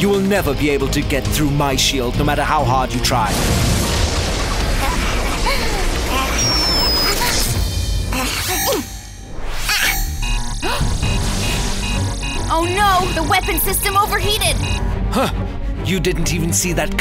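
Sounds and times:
dramatic background music: 0.0s - 17.0s.

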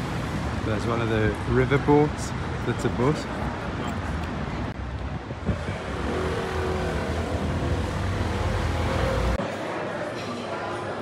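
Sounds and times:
street traffic: 0.0s - 10.9s.

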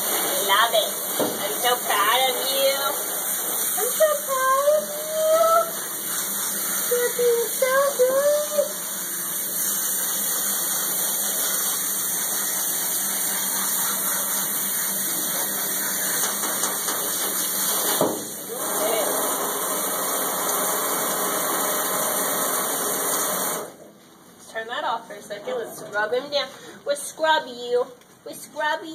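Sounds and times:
running water from a sprayer: 0.0s - 23.8s.

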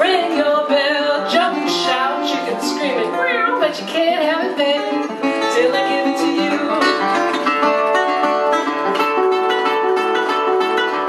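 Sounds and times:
woman singing: 0.0s - 7.7s
resonator guitar playing: 0.0s - 11.0s.

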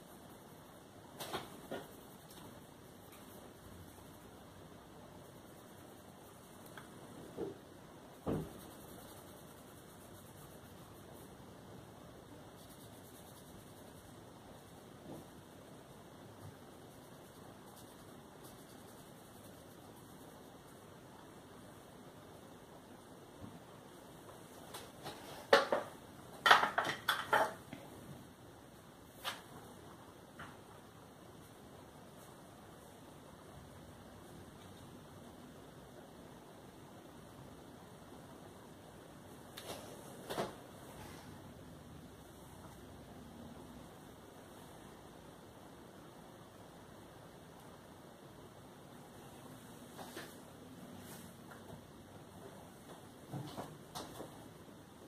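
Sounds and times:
objects clicking on a desk: 26.5s - 27.8s.

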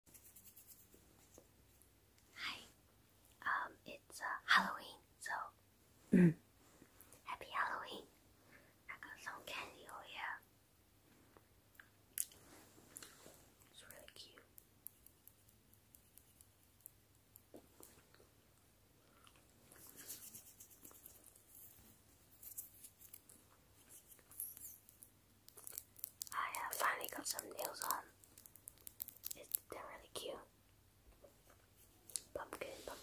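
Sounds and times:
person whispering: 2.4s - 2.8s, 3.4s - 6.4s, 7.2s - 8.1s, 8.9s - 10.5s, 13.7s - 14.5s, 26.3s - 28.2s, 29.3s - 30.5s, 32.3s - 33.0s
voiced mm-hmm: 6.1s - 6.4s.

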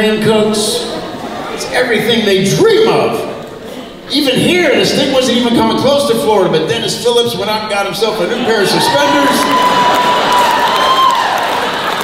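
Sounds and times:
audience applauding: 8.6s - 12.0s.

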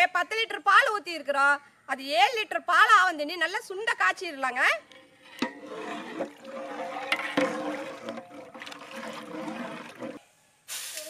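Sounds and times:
milk sloshing in a pot: 5.2s - 10.2s
metal knocks: 5.3s - 6.4s.

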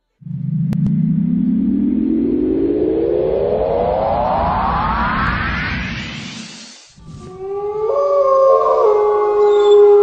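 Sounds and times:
rising sweep: 0.0s - 7.8s
long sustained tones: 0.0s - 10.0s.

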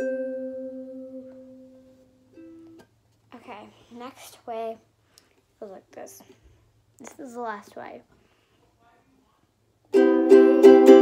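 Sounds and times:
ukulele chord ringing: 0.0s - 2.9s, 9.9s - 11.0s.

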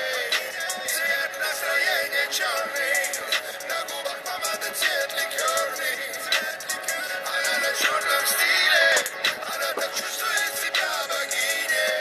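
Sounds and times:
autotuned pop singing over beat: 0.0s - 12.0s.

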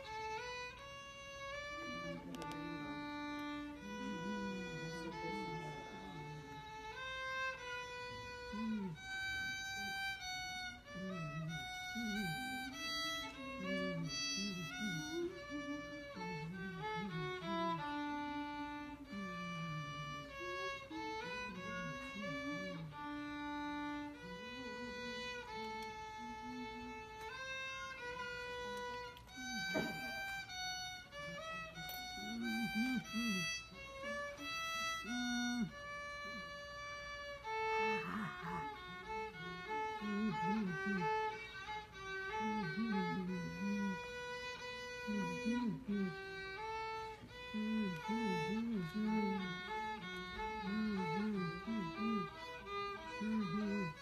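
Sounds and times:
low voices talking: 0.0s - 54.0s
solo violin melody: 0.0s - 54.0s.

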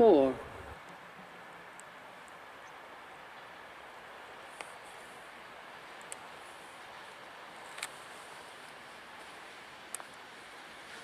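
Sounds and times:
distant steam locomotive: 0.0s - 11.0s.

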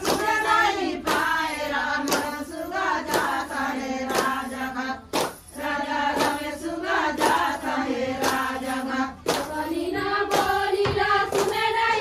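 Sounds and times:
sharp hand claps: 0.0s - 12.0s
women singing in unison: 0.0s - 12.0s.

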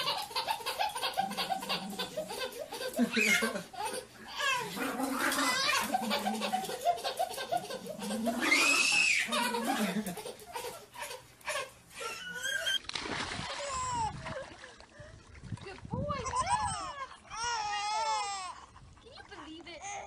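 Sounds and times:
adult laughter: 0.0s - 4.1s, 9.3s - 10.8s
baby laughing and giggling: 0.0s - 12.8s, 16.1s - 18.8s.

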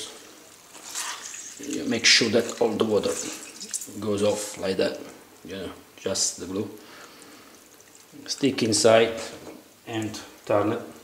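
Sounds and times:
water trickling from squeezed sheets: 0.0s - 11.0s.

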